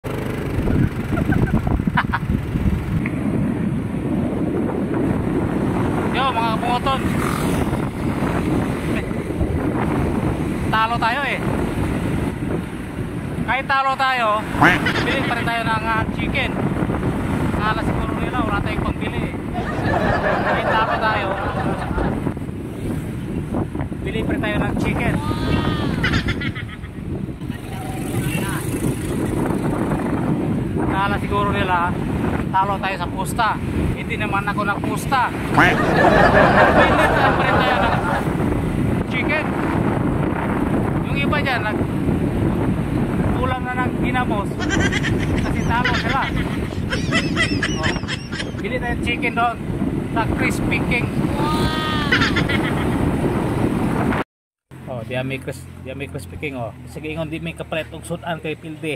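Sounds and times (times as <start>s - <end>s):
motorcycle engine running: 0.0s - 3.7s, 6.8s - 10.1s, 26.0s - 30.3s
motorcycle engine rumble: 0.0s - 10.7s
wind buffeting microphone: 0.0s - 54.2s
road noise: 0.0s - 58.9s.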